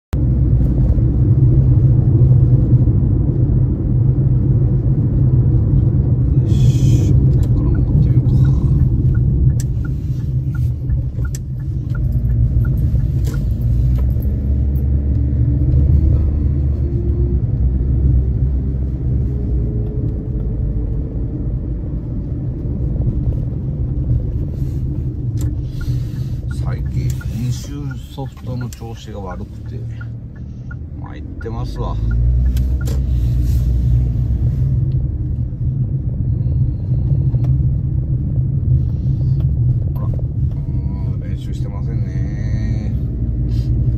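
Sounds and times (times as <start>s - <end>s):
car engine and road noise: 0.0s - 43.9s.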